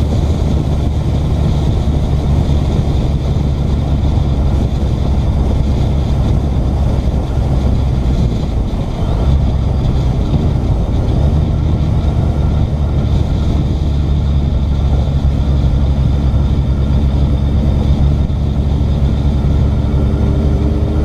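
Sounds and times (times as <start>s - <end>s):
heavy wind roar: 0.0s - 21.0s
motorcycle engine rumble: 0.0s - 21.0s.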